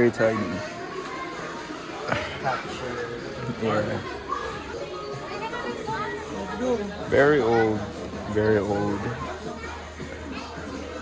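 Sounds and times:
children's voices: 0:00.0 - 0:11.0
faint chatter of shoppers: 0:00.0 - 0:11.0.

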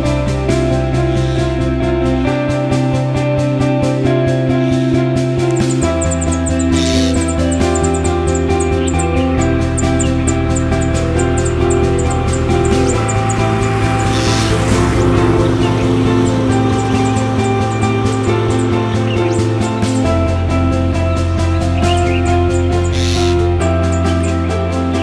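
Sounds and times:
held chords over low bass: 0:00.0 - 0:25.0
fast high ticking: 0:04.5 - 0:25.0.

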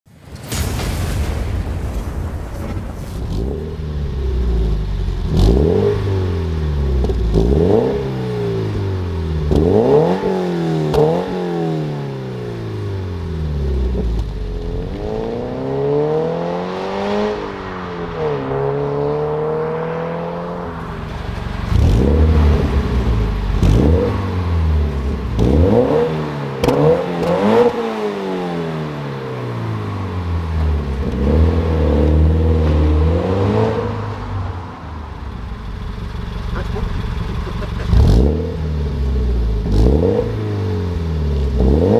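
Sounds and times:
car engine revving: 0:02.6 - 0:41.9.

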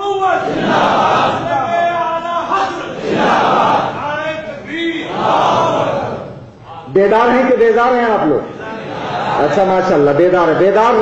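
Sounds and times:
crowd chanting in unison: 0:00.4 - 0:01.5, 0:02.5 - 0:04.0, 0:05.0 - 0:06.4.

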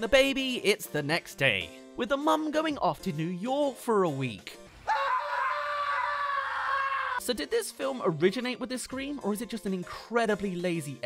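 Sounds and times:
person screaming: 0:04.8 - 0:07.2.

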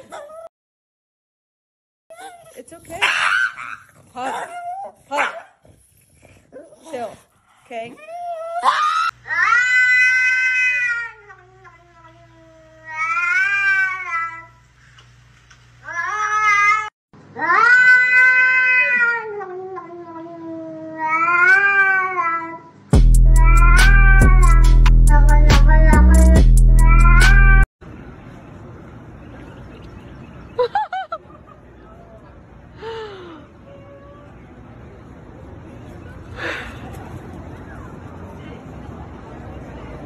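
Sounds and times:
beat with bass and drums: 0:22.9 - 0:27.6.

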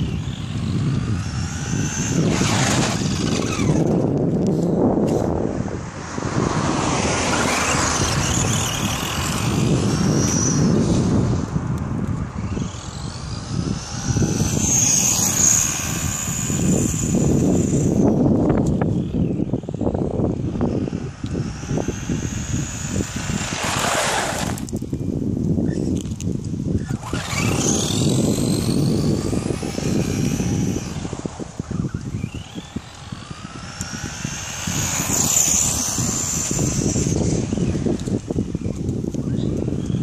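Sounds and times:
rc truck motor whining: 0:00.0 - 0:40.0
steady rushing noise: 0:00.0 - 0:40.0.

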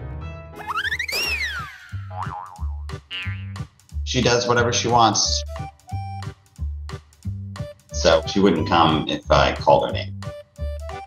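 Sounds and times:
light background music: 0:00.0 - 0:11.0
cartoon whistle glide: 0:00.6 - 0:02.0.

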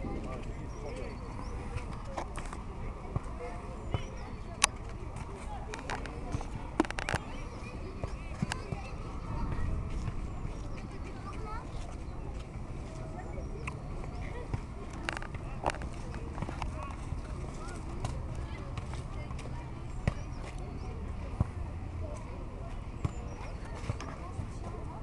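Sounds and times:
distant children's voices and shouts: 0:00.0 - 0:25.0.

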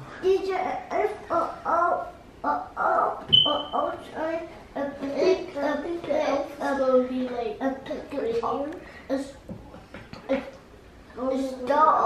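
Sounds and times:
high squeak: 0:03.3 - 0:03.8.

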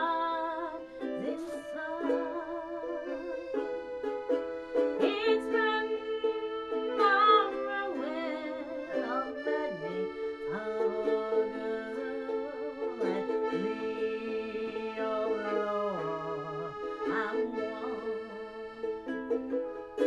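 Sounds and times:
woman singing: 0:00.0 - 0:03.6, 0:04.9 - 0:19.1
button accordion chords: 0:00.0 - 0:20.0
ukulele strumming: 0:00.0 - 0:20.0.

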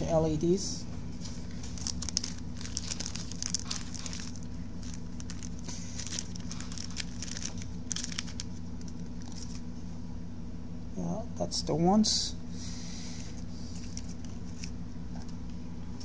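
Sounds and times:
steady low hum: 0:00.0 - 0:16.0
plastic bag crinkling: 0:01.2 - 0:09.6.

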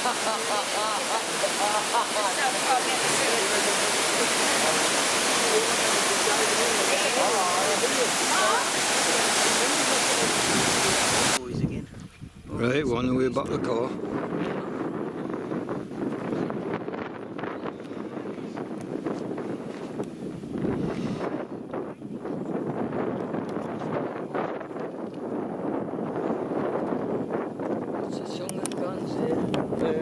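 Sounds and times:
wind buffeting microphone: 0:01.0 - 0:30.0.

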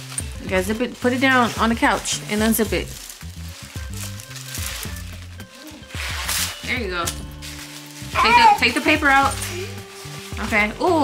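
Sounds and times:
background music with bass line: 0:00.0 - 0:11.0
nylon jacket and plastic rustling: 0:00.0 - 0:11.0.

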